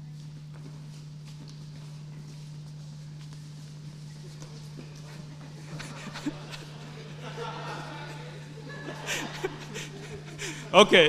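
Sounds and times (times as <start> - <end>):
crowd footsteps shuffling: 0.0 - 11.0
low electrical hum: 0.0 - 11.0.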